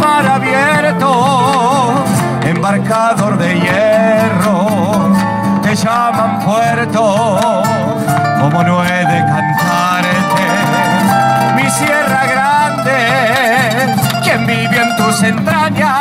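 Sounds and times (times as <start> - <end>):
box drum percussion: 0.0 - 9.0, 9.6 - 16.0
acoustic guitars strumming: 0.0 - 16.0
keyboard: 0.0 - 16.0
vibrato melody: 8.3 - 15.6.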